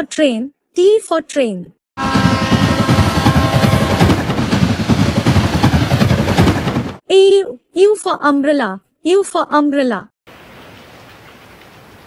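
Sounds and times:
diesel train rumble: 2.0s - 7.0s.

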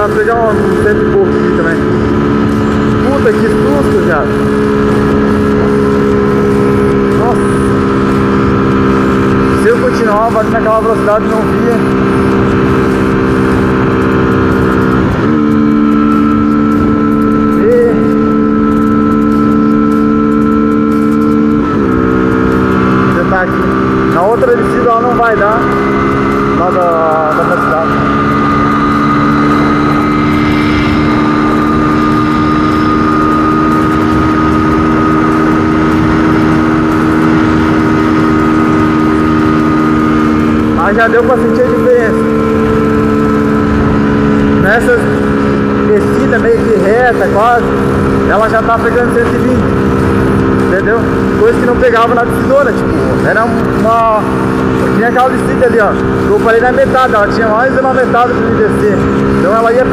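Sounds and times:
motorcycle engine at high revs: 0.0s - 59.9s.

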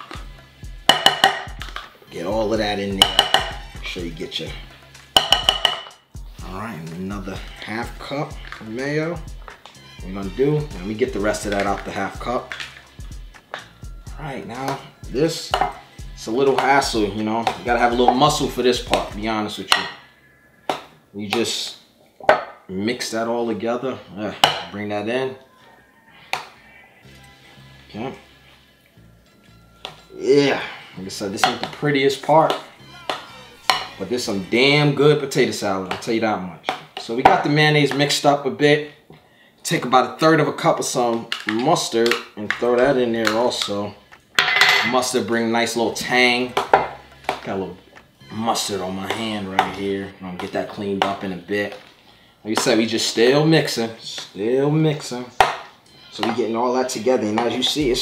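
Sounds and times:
utensil rapping plastic cup: 0.0s - 1.9s, 2.5s - 3.8s, 5.1s - 6.0s, 8.4s - 13.8s, 15.5s - 20.0s, 31.2s - 38.2s, 40.6s - 51.9s
background music with bass pulse: 0.0s - 21.1s, 27.0s - 35.0s, 45.9s - 51.5s
spoon knocking glass bowl: 0.9s - 1.6s, 3.0s - 3.6s, 5.2s - 6.0s, 15.5s - 15.8s
stirring thick potato salad: 45.1s - 53.2s.

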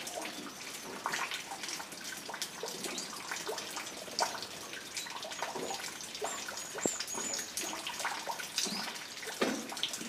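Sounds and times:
water dripping and splashing: 0.0s - 10.0s.

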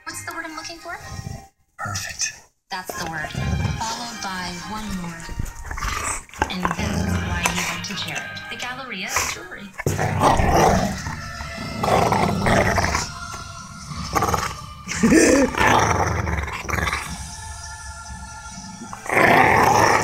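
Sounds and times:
dog growling: 1.0s - 1.5s, 3.2s - 4.1s, 4.7s - 8.4s, 9.1s - 20.0s.

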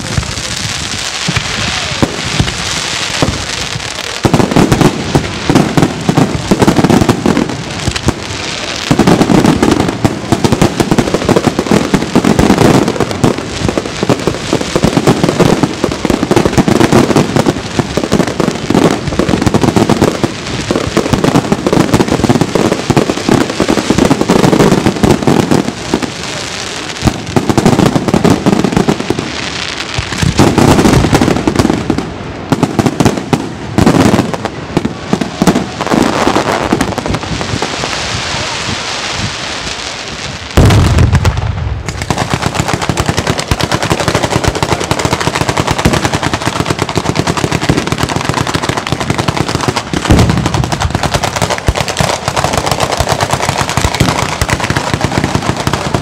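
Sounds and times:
fireworks bangs and crackles: 0.0s - 56.0s.

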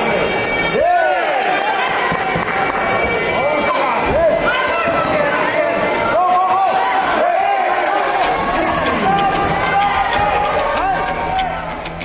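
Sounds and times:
people shouting: 0.2s - 12.0s.

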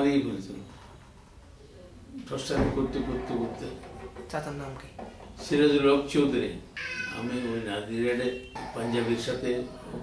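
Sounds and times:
man speaking: 5.5s - 10.0s.

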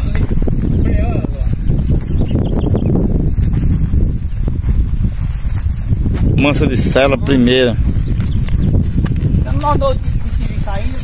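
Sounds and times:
horse hooves on dirt: 0.0s - 11.0s
wind rumble on microphone: 0.0s - 11.0s.

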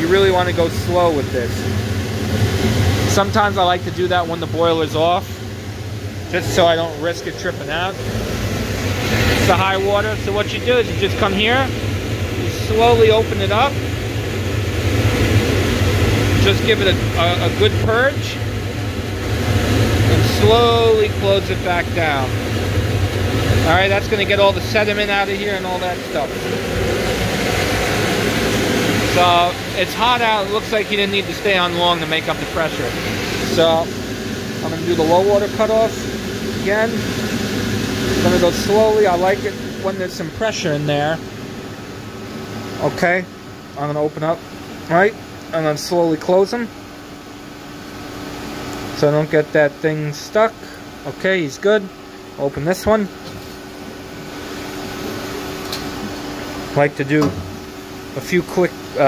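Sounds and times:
boiler burner rushing: 0.0s - 59.0s.

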